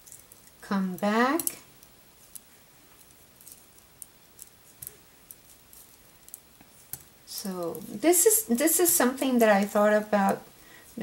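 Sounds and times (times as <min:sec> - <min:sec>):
knitting needles clicking: 0:01.3 - 0:07.9.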